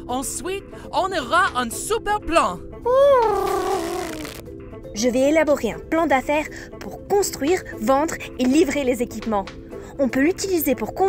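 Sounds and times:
background music: 0:00.0 - 0:11.0
cartoon owl call: 0:02.9 - 0:04.4.

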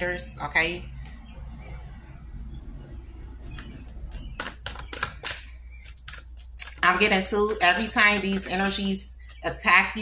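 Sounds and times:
cards clicking and snapping: 0:03.4 - 0:07.0.

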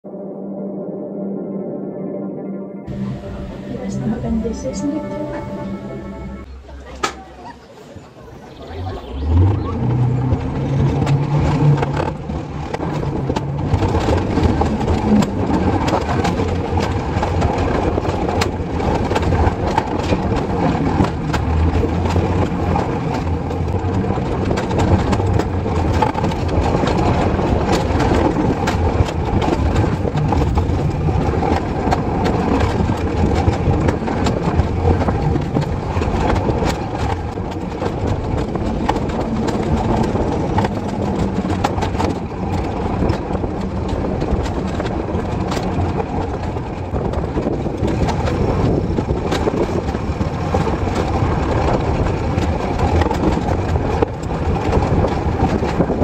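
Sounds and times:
sled wheels rumbling on rails: 0:02.9 - 0:56.0.

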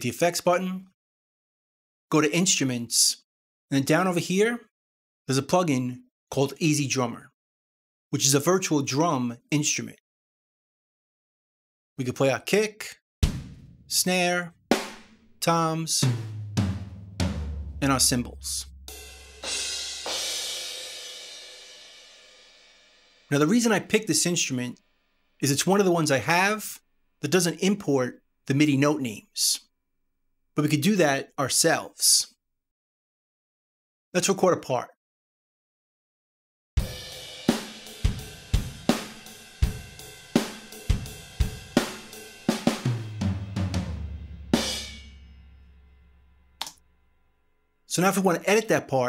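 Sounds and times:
kick and snare drums: 0:13.2 - 0:20.5, 0:36.8 - 0:45.4
descending tom fill: 0:13.2 - 0:23.5, 0:36.8 - 0:46.6
ride cymbal beat: 0:16.0 - 0:23.3, 0:36.8 - 0:43.1, 0:44.4 - 0:46.1
cymbal crash ringing: 0:18.9 - 0:23.3, 0:44.4 - 0:46.5.

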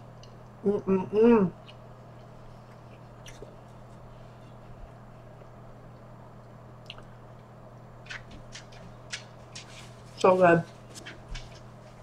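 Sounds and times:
chewing pizza: 0:01.5 - 0:12.0.

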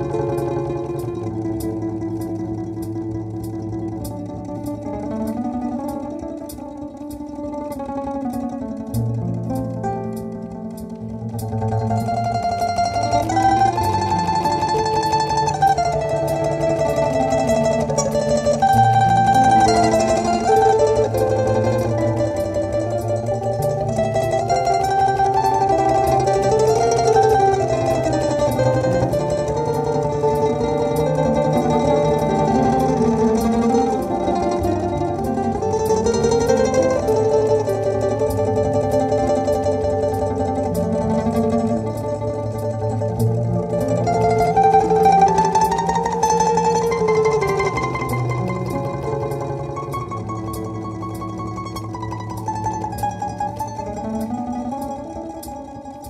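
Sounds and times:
held low bass notes: 0:00.0 - 0:56.0
looped accompaniment layers: 0:00.0 - 0:56.0
plucked string melody: 0:00.0 - 0:56.0.

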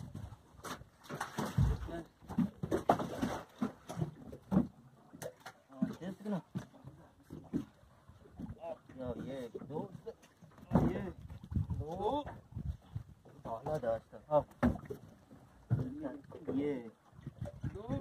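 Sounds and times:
knocks on a boat: 0:10.6 - 0:11.7, 0:14.4 - 0:15.0, 0:15.6 - 0:16.6
dull thump: 0:10.7 - 0:11.1, 0:14.5 - 0:14.9.

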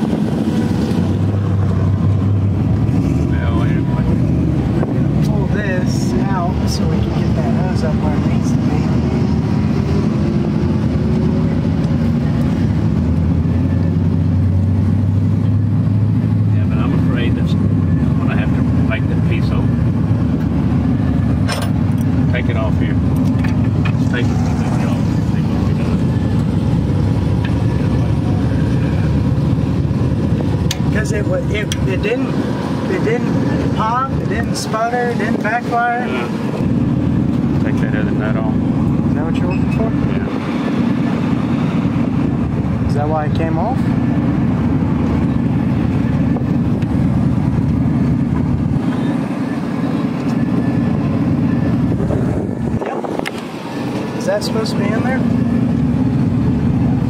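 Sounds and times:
vehicle engines rumbling: 0:00.0 - 0:57.0.

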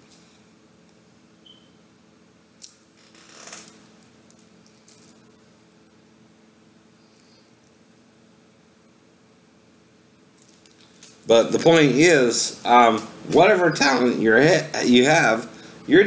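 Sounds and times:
faint room hum: 0:00.0 - 0:16.0.

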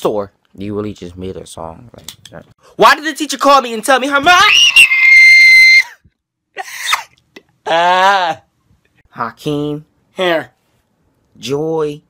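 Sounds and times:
man screaming high-pitched: 0:04.3 - 0:05.9, 0:07.6 - 0:08.4.

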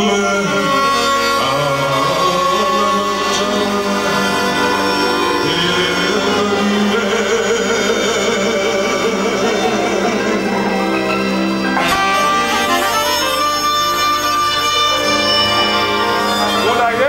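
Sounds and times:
man singing into a microphone: 0:00.0 - 0:14.1, 0:16.1 - 0:17.0
accordion: 0:00.0 - 0:17.0
clarinet: 0:00.0 - 0:17.0.

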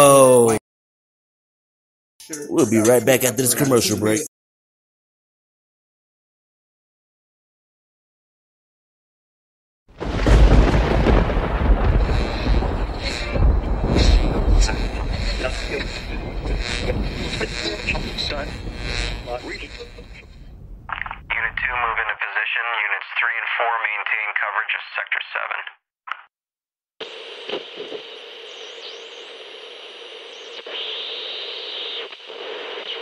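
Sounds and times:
loud explosion with deep rumble: 0:10.0 - 0:18.9
voice over crackly radio: 0:14.5 - 0:20.2, 0:20.9 - 0:26.3.

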